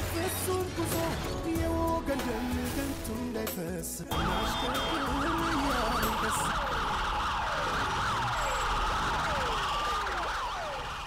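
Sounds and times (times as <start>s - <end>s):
emergency vehicle sirens: 4.1s - 11.0s.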